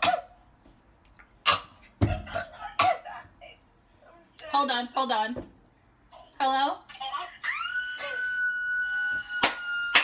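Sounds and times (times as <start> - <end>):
woman squealing: 7.3 - 10.0.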